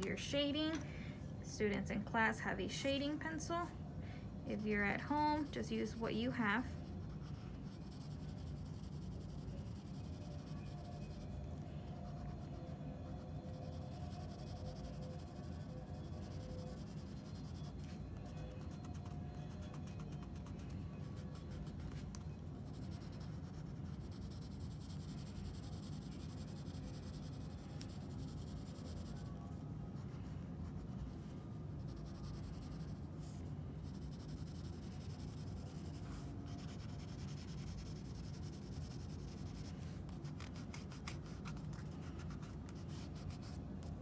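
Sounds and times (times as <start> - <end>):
pencil scratching on paper: 4.5 - 43.9.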